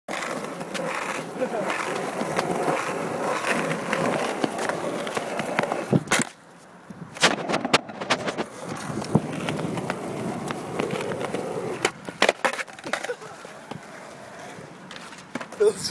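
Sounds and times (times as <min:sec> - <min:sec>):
skateboard clacking on ground: 0:00.1 - 0:06.5, 0:07.1 - 0:15.9
skateboard wheels rolling on pavement: 0:00.1 - 0:15.9.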